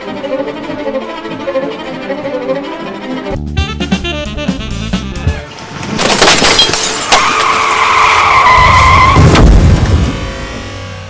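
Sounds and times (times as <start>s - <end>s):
heavy crash: 5.6s - 11.0s
car tyres squealing: 6.9s - 9.4s.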